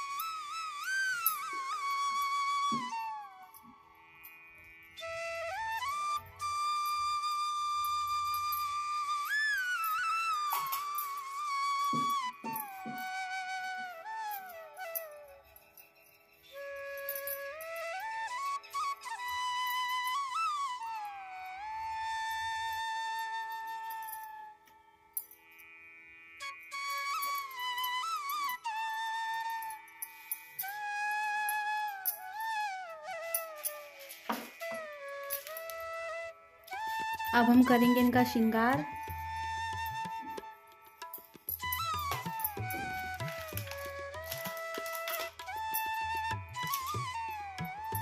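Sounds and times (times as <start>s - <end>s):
flute melody: 0.0s - 25.2s, 26.4s - 48.0s
light percussion: 0.0s - 48.0s.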